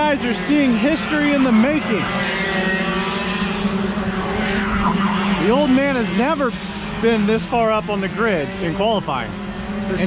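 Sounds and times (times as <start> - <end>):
kart engines droning: 0.0 - 10.0.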